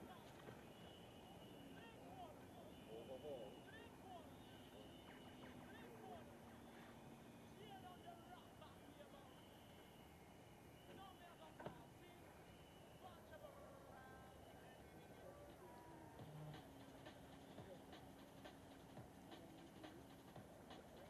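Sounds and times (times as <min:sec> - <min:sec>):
faint scattered sounds: 0:00.0 - 0:21.0.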